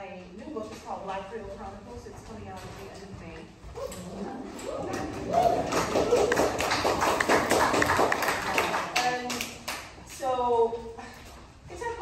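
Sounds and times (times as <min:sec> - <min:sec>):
audience clapping: 0:04.6 - 0:09.9.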